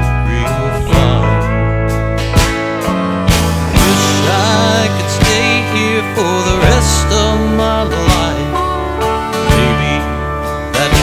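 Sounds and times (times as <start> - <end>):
lead guitar bending notes: 0.0 - 11.0
steady bass: 0.0 - 11.0
drum hits: 2.2 - 7.3.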